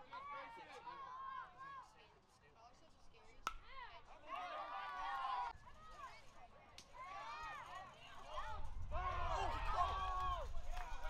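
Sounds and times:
baseball striking sharp crack: 0:03.4 - 0:03.7.

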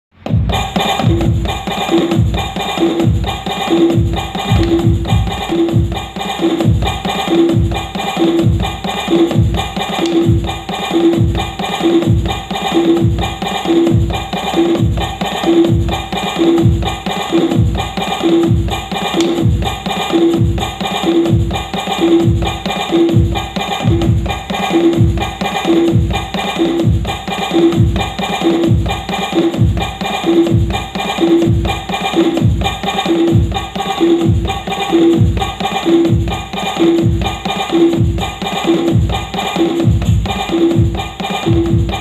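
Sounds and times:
pitched block-like electronic hits: 0:03.9 - 0:05.8, 0:10.0 - 0:10.5, 0:19.2 - 0:19.7
deep kick drum hits: 0:04.5 - 0:05.9.

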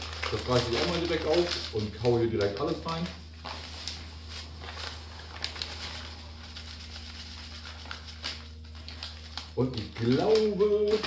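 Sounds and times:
plastic bag crinkling: 0:00.0 - 0:11.0
steady low hum: 0:00.0 - 0:11.0.

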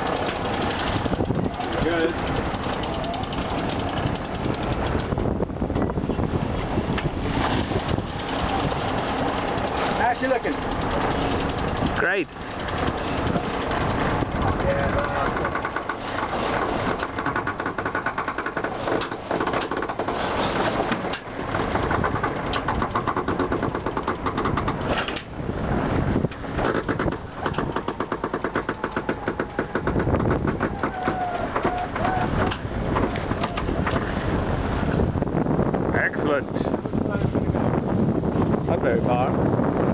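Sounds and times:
sailboat under way: 0:00.0 - 0:39.9.

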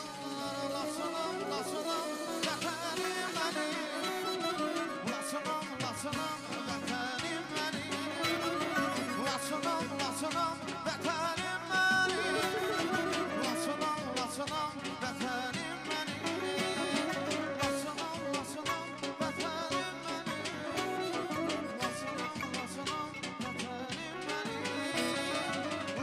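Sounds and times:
instrumental music with steady beat: 0:00.0 - 0:26.0
man singing into a microphone: 0:00.0 - 0:26.0.

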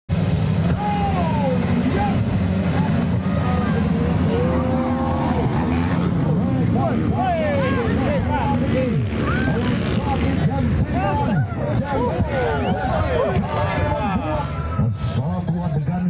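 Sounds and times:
dirt bike engines revving: 0:00.1 - 0:16.0.

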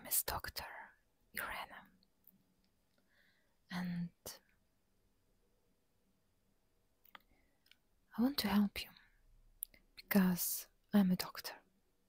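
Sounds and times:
person whispering: 0:00.0 - 0:02.0, 0:10.0 - 0:11.7.

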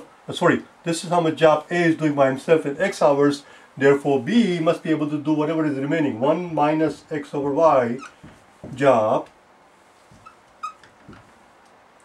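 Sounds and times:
marker squeaking on whiteboard: 0:07.9 - 0:08.4, 0:10.1 - 0:11.3.

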